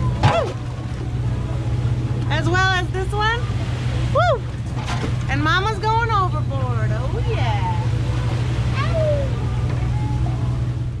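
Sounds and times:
low rumble on small boat: 0.0s - 11.0s.

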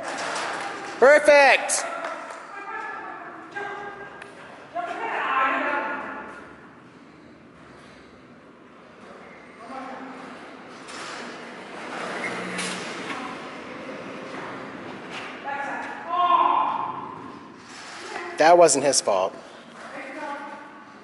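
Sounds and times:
faint talking echoing in hall: 0.0s - 7.6s.

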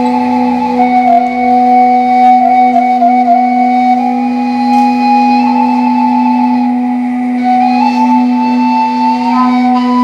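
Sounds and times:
end-blown wooden flute melody: 0.0s - 10.0s
steady low drone: 0.0s - 10.0s.

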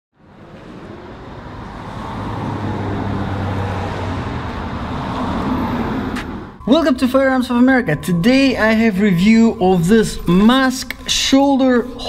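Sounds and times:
road traffic: 0.1s - 6.9s.

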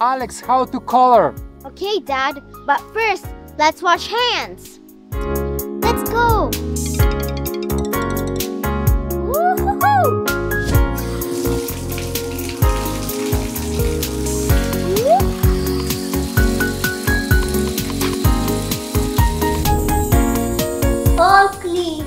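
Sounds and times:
upbeat background music: 0.0s - 22.0s
hands being washed: 10.3s - 21.4s
tap water running into sink: 10.6s - 21.5s.

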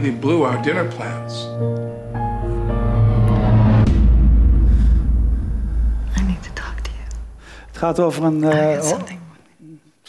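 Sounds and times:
deep rumble: 1.9s - 8.2s
person whispering: 6.1s - 7.2s
man speaking: 7.7s - 9.2s.

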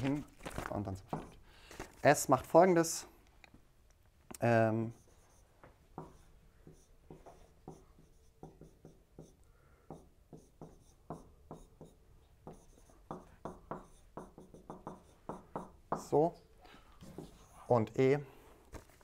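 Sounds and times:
marker writing on whiteboard: 1.0s - 1.4s, 4.8s - 16.4s, 17.0s - 17.8s.

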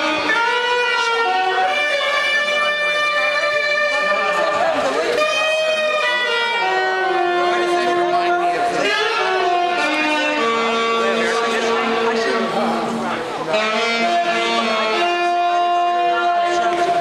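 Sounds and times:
saxophone playing long notes: 0.0s - 17.0s.

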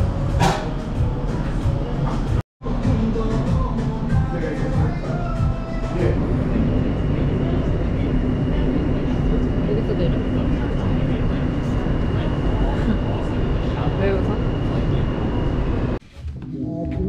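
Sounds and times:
background music: 0.0s - 7.9s
high whine: 0.0s - 16.0s
subway car rumble: 4.4s - 16.0s.

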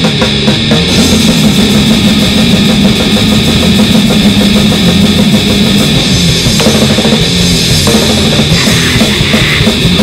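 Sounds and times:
grindcore band playing: 0.0s - 10.0s.

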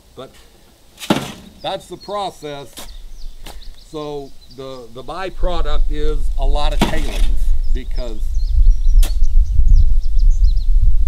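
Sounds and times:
small birds chirping: 0.0s - 10.8s
shovel knocking into sand: 1.0s - 1.8s.

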